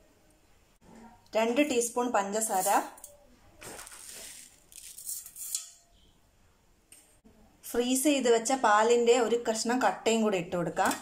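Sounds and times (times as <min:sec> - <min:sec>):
sugar pouring into steel jar: 0:03.8 - 0:05.6.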